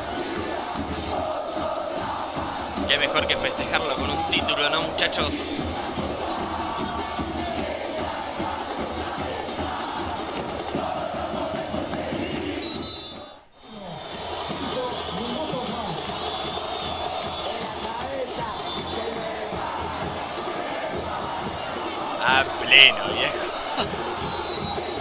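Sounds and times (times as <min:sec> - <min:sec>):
drums beating: 0:00.0 - 0:12.6, 0:14.0 - 0:25.0
crowd singing a chant: 0:00.0 - 0:14.5, 0:16.2 - 0:25.0.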